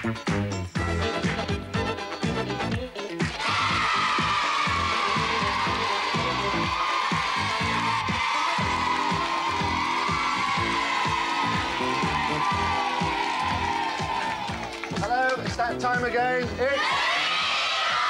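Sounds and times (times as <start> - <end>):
upbeat theme music with steady beat: 0.0 - 18.0
children cheering: 3.3 - 15.4, 16.7 - 18.0.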